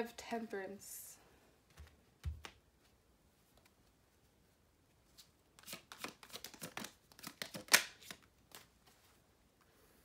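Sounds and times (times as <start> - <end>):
cards shuffling and flicking: 5.1 - 9.0.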